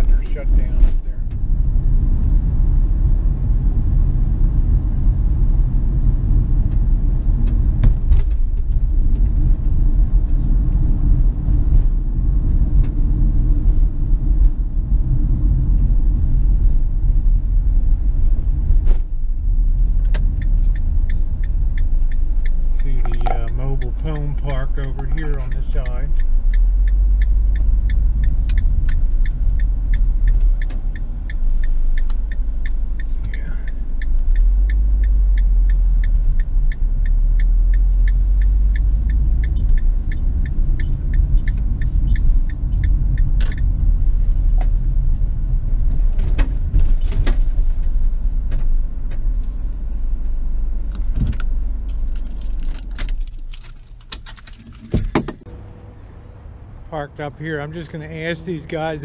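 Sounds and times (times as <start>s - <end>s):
road and engine rumble: 0.0s - 59.0s
regular ticking: 19.6s - 45.8s.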